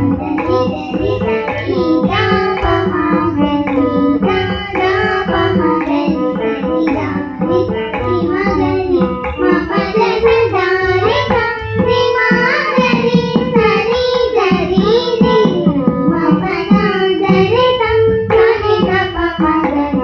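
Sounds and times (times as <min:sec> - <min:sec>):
girls singing together: 0:00.0 - 0:20.0
hand drum: 0:00.0 - 0:20.0.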